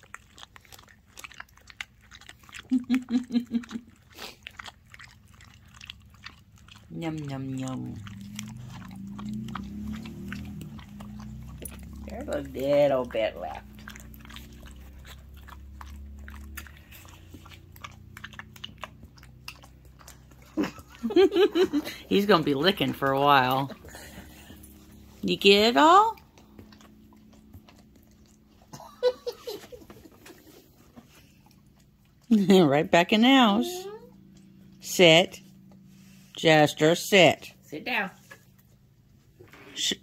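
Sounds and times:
dog licking wetly: 0.0 - 32.4
steady low hum: 2.3 - 37.8
person laughing loudly: 2.7 - 3.8, 20.6 - 22.1, 28.8 - 30.2.

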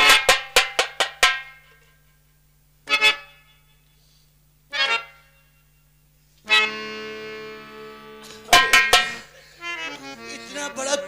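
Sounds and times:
sharp ringing percussion strikes: 0.0 - 2.0, 8.2 - 9.5.

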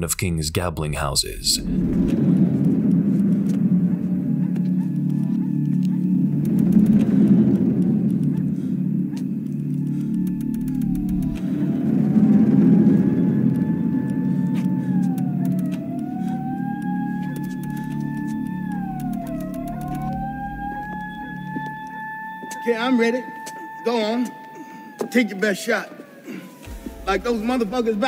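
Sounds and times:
low rumbling drone: 1.6 - 23.4, 26.1 - 28.0
thin wailing tone: 10.2 - 28.0.

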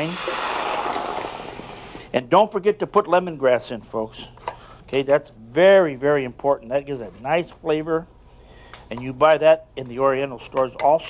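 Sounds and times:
wine sizzling in a hot pan: 0.0 - 2.0.

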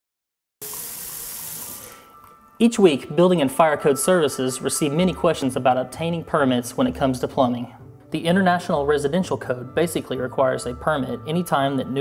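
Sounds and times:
water running into a metal sink: 0.6 - 2.0.

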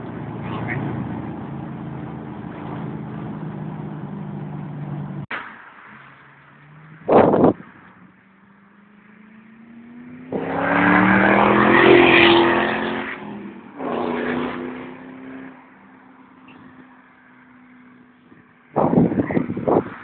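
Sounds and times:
car engine accelerating hard: 0.0 - 5.3, 6.4 - 20.0.

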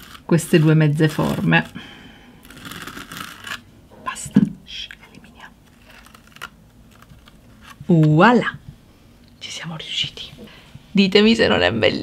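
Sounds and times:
palette knife scraping on card: 0.0 - 1.7, 2.4 - 3.6.

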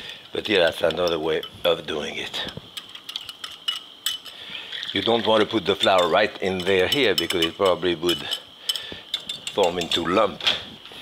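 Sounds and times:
whisk scraping glass bowl: 3.0 - 8.4, 9.2 - 10.2.

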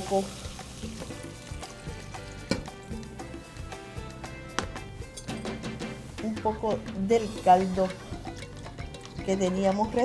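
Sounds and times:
broth pouring into a pot: 0.0 - 2.4
background music with sustained notes: 0.0 - 10.0.

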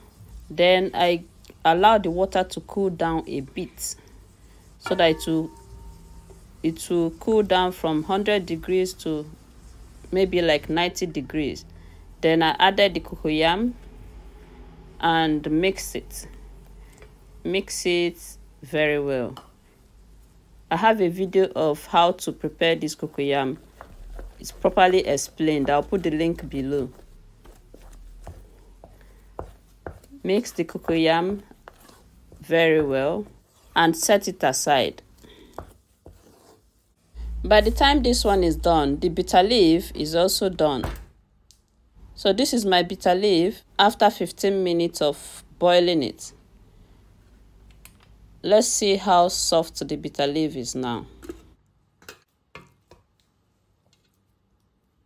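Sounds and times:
wooden spoon stirring thick paste: 0.0 - 14.1, 15.3 - 40.5.

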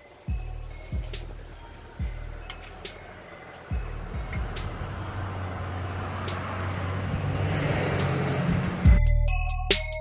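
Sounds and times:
rising hiss: 0.1 - 8.9
low bass: 3.7 - 10.0.

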